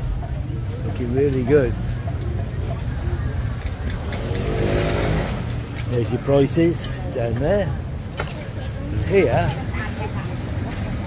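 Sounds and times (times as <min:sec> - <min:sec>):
low rumble of road noise: 0:00.0 - 0:11.0
vehicle engine passing: 0:02.9 - 0:07.1.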